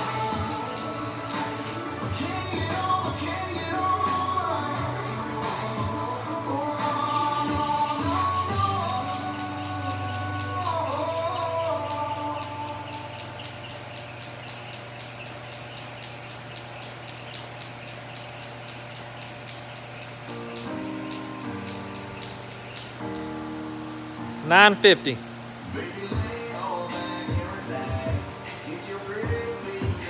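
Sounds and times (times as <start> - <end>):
pop music with singing: 0.0 - 15.4, 25.6 - 30.0.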